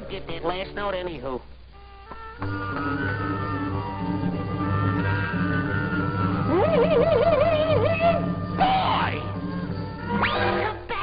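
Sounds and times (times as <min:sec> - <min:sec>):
cartoon background music: 0:02.1 - 0:11.0.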